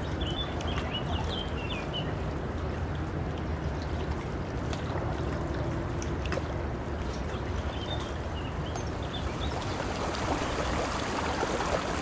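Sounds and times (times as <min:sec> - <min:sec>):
river water rushing: 0:08.2 - 0:12.0.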